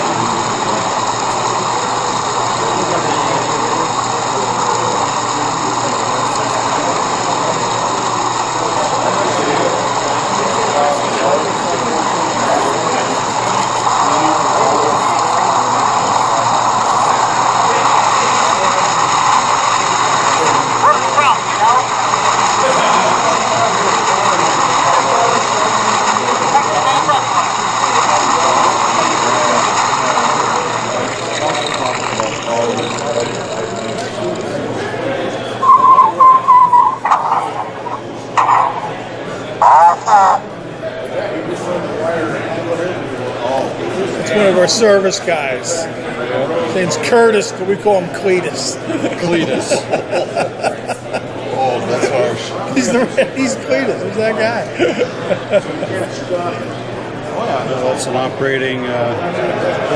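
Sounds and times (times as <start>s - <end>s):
chatter of many voices: 0.0s - 59.9s.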